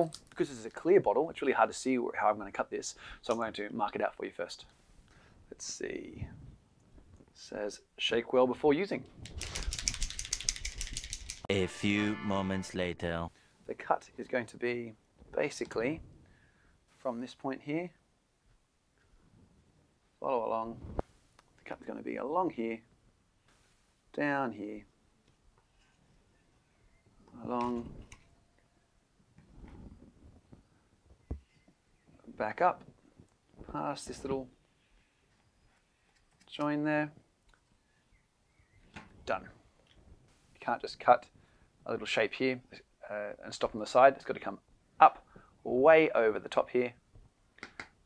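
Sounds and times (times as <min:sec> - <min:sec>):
marker ball rattling: 0:09.2 - 0:11.5.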